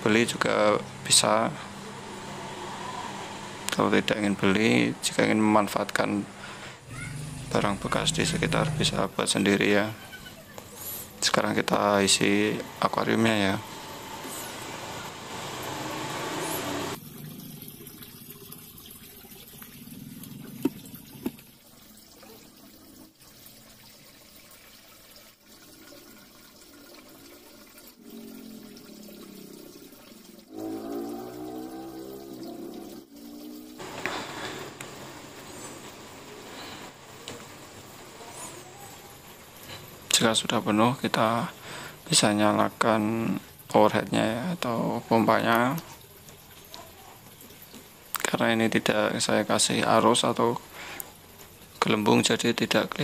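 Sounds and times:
water pouring into aquarium: 0.0 - 53.0.

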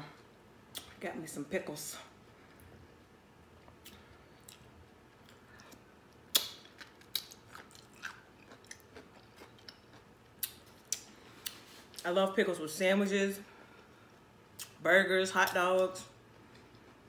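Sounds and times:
chewing with crunches: 3.6 - 12.1.

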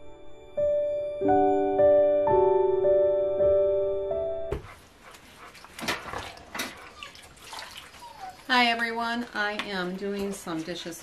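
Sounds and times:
water splashing and sloshing: 4.7 - 8.8
woman's voice: 8.5 - 11.0.

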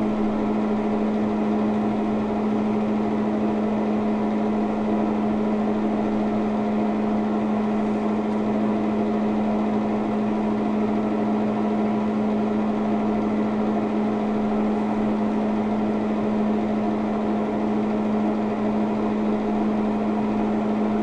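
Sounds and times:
machine hum: 0.0 - 21.0.

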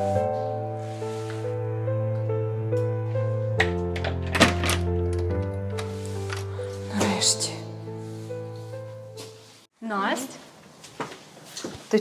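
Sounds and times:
soft background music: 0.0 - 9.7.

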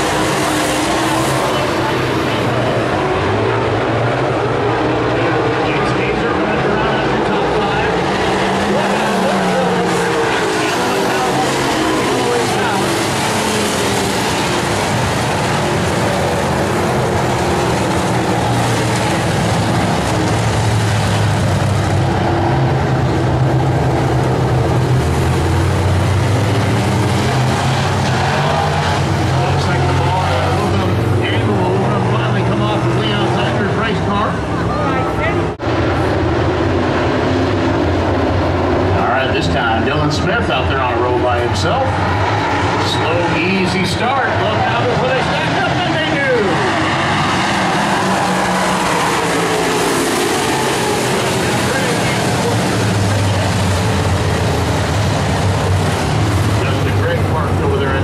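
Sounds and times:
race car engines droning: 0.0 - 58.0.

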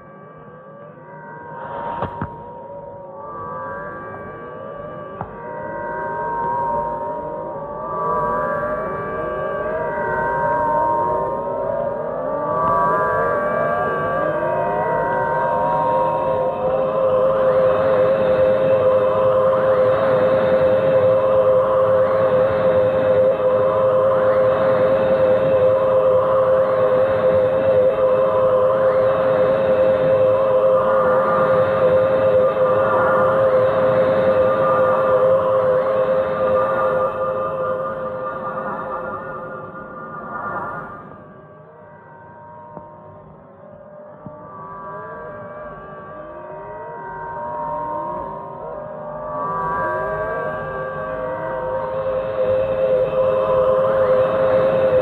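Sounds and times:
wavering siren-like tone: 0.0 - 55.0.

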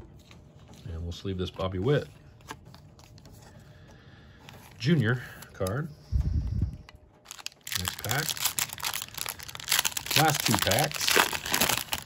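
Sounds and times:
foil wrapper crinkling and tearing: 7.2 - 12.0.

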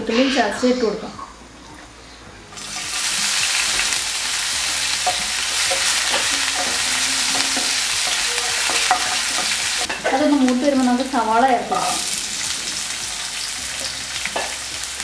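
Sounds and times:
food sizzling in hot oil: 2.6 - 15.0.

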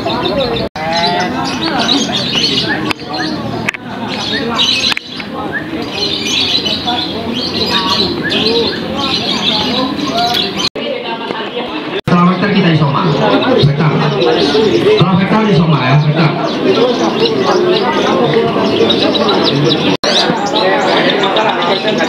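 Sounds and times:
crowd chatter: 0.0 - 22.0
songbirds chirping and whistling: 0.0 - 22.0.

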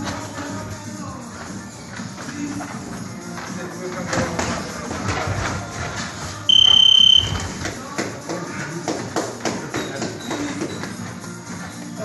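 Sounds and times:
background music: 0.0 - 12.0
high-pitched timer beep: 6.5 - 7.4.

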